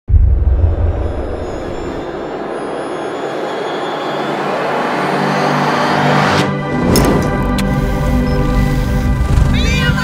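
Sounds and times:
sustained musical tones: 0:00.8 - 0:09.4.

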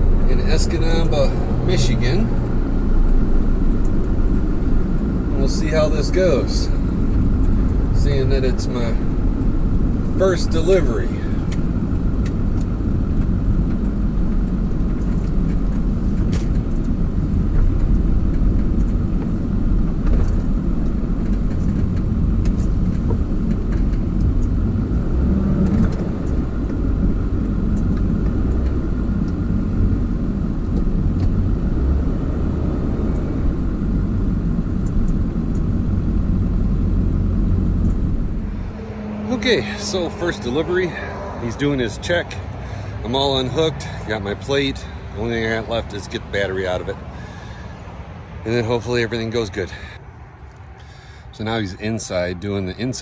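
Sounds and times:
truck engine and road rumble: 0:00.0 - 0:53.0.

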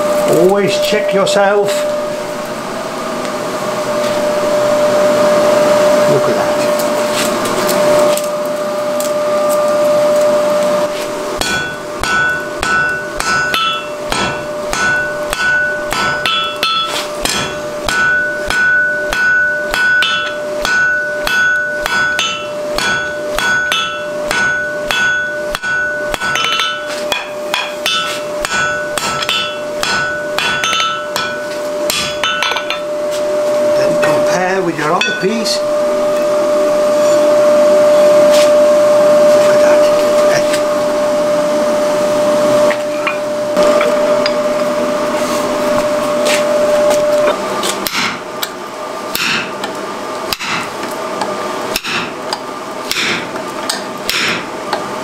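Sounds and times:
steady hum and hiss: 0:00.0 - 0:55.0
hammer striking steel on anvil: 0:11.4 - 0:33.0, 0:33.9 - 0:35.6, 0:45.7 - 0:54.8.

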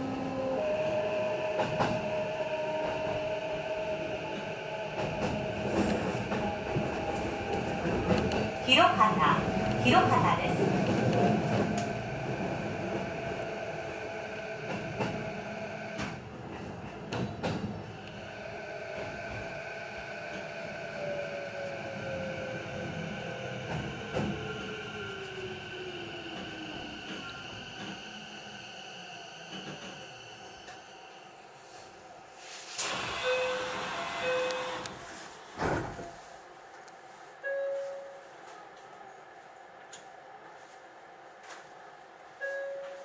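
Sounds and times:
train running: 0:00.0 - 0:31.0, 0:31.7 - 0:43.0
train motor whine: 0:32.8 - 0:36.1.

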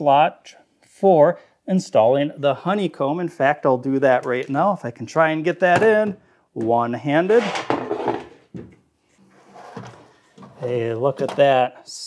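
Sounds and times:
tray sliding scrape: 0:07.3 - 0:08.4, 0:09.1 - 0:10.7.

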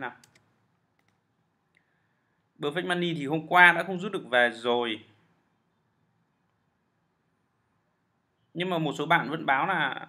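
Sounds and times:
computer keyboard clicks: 0:00.2 - 0:01.2.

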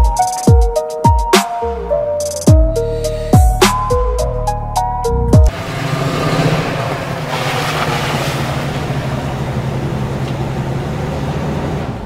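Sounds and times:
truck engine running: 0:02.8 - 0:12.0.

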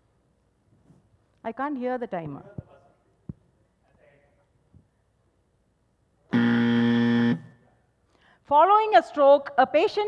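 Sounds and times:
electronic buzzer: 0:06.3 - 0:07.6.

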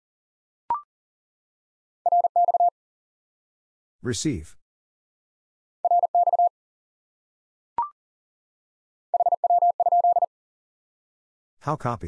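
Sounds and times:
morse code tone: 0:02.1 - 0:02.7, 0:05.8 - 0:06.5, 0:09.2 - 0:10.3.

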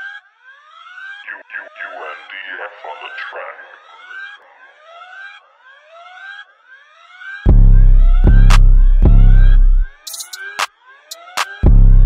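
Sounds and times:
siren-like synth glides: 0:00.0 - 0:12.0
sustained bass: 0:07.5 - 0:09.9, 0:11.6 - 0:12.0.

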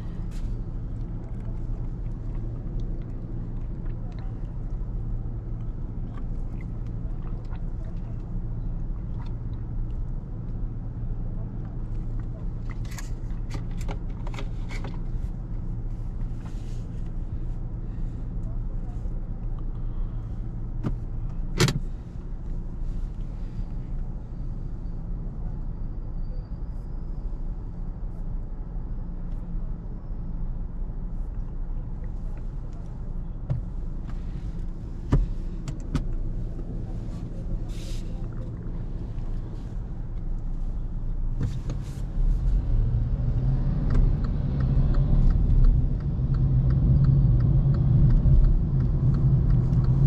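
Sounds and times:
car engine idling: 0:31.8 - 0:42.6.

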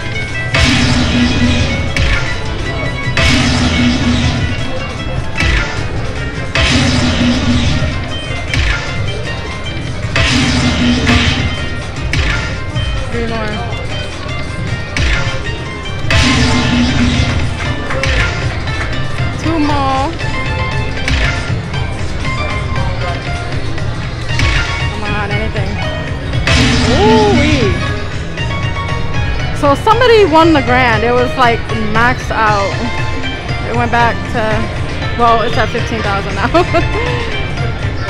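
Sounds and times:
slot machine bonus music: 0:00.0 - 0:38.0.

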